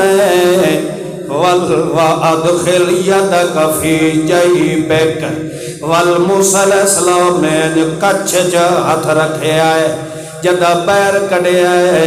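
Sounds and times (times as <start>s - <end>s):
man chanting through microphone: 0.0s - 12.0s.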